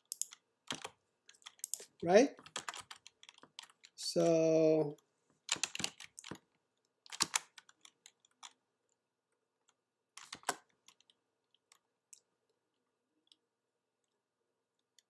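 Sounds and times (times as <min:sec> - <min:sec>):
computer keyboard typing: 0:00.0 - 0:04.3, 0:05.5 - 0:06.4, 0:07.0 - 0:08.6, 0:10.2 - 0:11.8.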